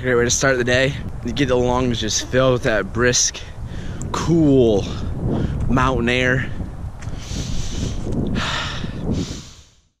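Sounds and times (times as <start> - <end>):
wind rumble on microphone: 0.0 - 10.0
man breathing deeply: 3.5 - 4.1, 4.9 - 5.6, 7.1 - 10.0.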